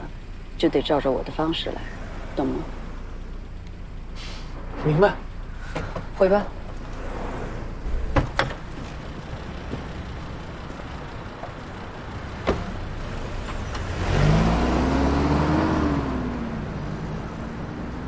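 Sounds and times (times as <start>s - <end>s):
car engine revving and pulling away: 1.3s - 5.7s, 6.5s - 18.0s.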